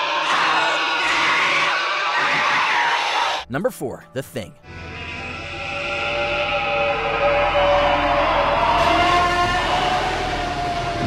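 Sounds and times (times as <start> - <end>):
monster screech: 0.0 - 3.4, 5.0 - 11.0.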